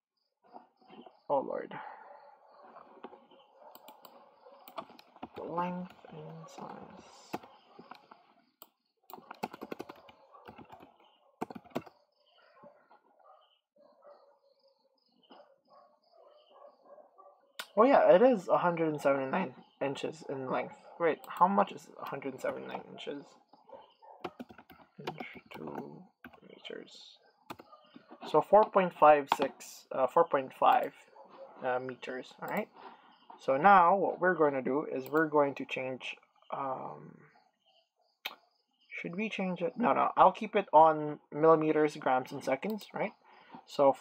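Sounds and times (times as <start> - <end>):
computer keyboard typing: 3.8 - 12.0, 24.2 - 26.4, 27.5 - 27.7.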